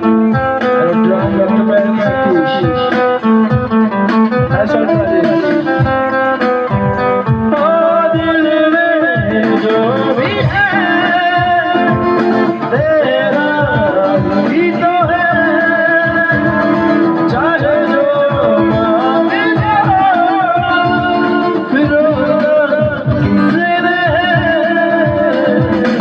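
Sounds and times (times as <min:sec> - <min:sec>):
person singing into microphone: 0:00.0 - 0:26.0
strummed acoustic guitar: 0:00.0 - 0:26.0.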